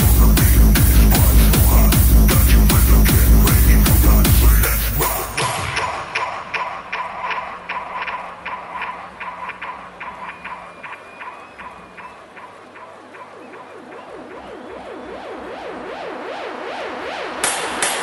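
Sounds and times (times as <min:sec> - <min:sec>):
light ticking beat: 0:00.0 - 0:04.7
sweeping synth tones: 0:00.0 - 0:17.8
pulsing synth note: 0:00.0 - 0:18.0.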